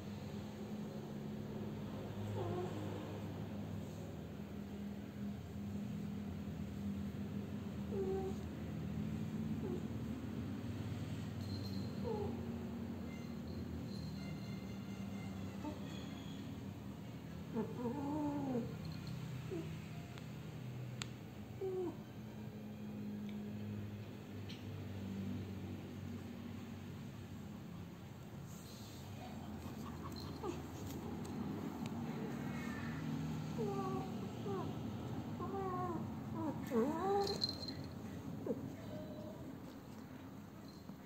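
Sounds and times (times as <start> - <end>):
cat purring: 2.2 - 3.1, 7.9 - 8.5, 17.5 - 18.9, 28.7 - 34.8, 35.4 - 40.0
cat yowling: 35.4 - 37.7.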